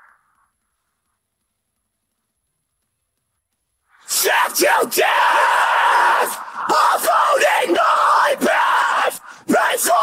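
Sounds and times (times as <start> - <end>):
harsh screamed vocals: 4.0 - 10.0.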